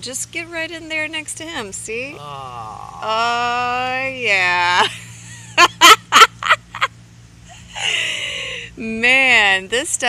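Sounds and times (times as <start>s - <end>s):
person laughing: 4.8s - 6.9s.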